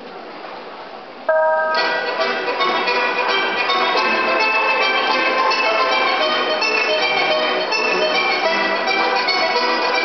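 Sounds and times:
murmur of sports hall crowd: 0.0s - 10.0s
bell-like note: 1.3s - 2.2s
bright chiming music: 1.3s - 8.2s.

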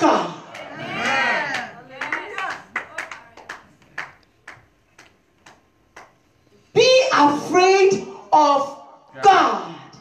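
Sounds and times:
scattered hand claps: 1.5s - 6.3s.

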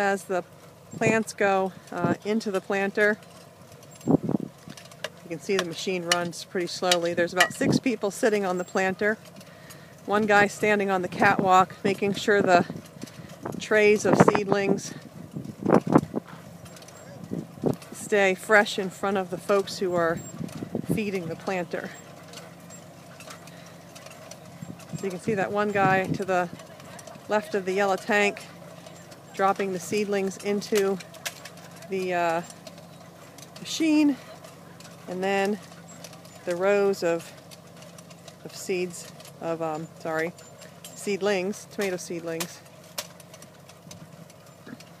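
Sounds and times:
tractor engine running: 0.0s - 45.0s.

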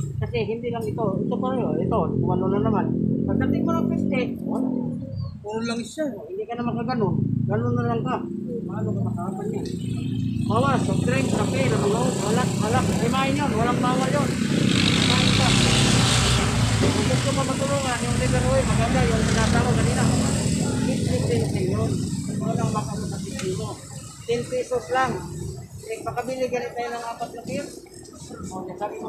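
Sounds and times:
men talking: 0.0s - 29.0s
road traffic: 0.0s - 29.0s
vehicle passing: 1.0s - 5.4s, 7.0s - 29.0s.

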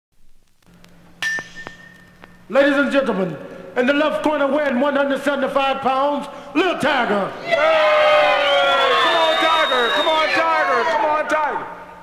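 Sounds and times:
vinyl record hum and clicks: 0.1s - 3.5s.

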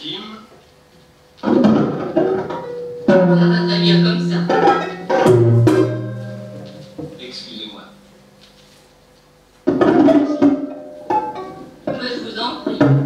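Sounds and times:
electronic noise music: 2.8s - 8.4s.

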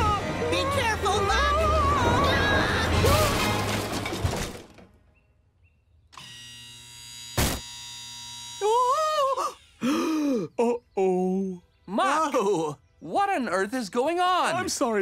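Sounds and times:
worried wordless vocal sounds: 8.6s - 12.8s.

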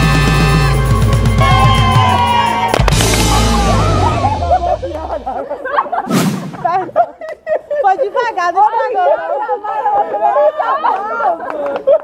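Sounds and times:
people chattering: 3.1s - 12.0s.

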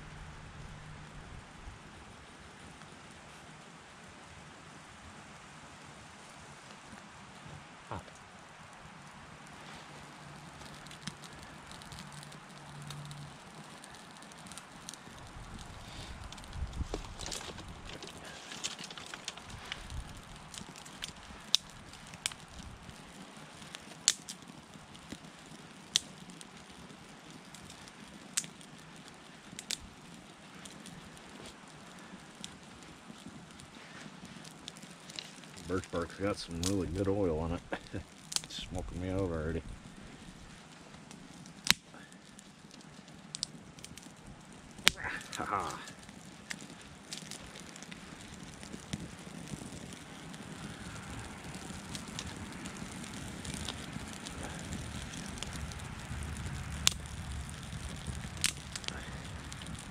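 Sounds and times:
kindling fire crackling: 0.0s - 59.9s
sharp fire pops: 5.8s - 59.9s
steady background hiss: 34.9s - 48.4s.

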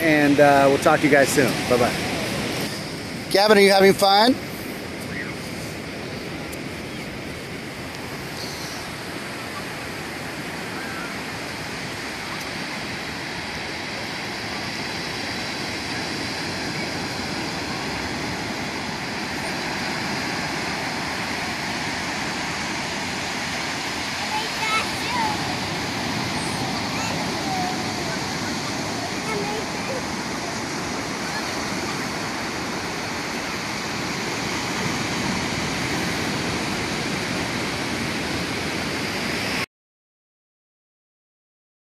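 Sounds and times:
ocean waves breaking on beach: 0.0s - 39.7s.

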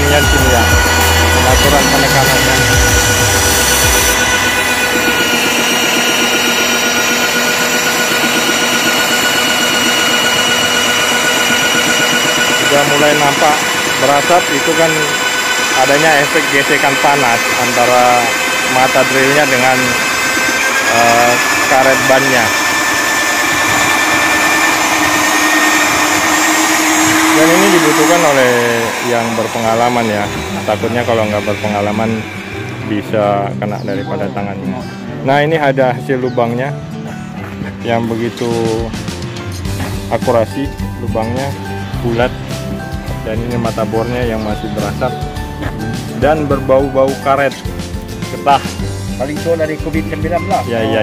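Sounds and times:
drill motor whining: 0.0s - 35.1s, 37.2s - 51.0s.

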